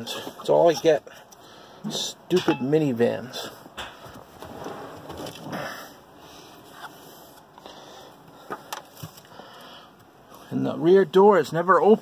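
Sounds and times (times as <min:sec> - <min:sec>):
rustling and shuffling: 0:03.4 - 0:05.8.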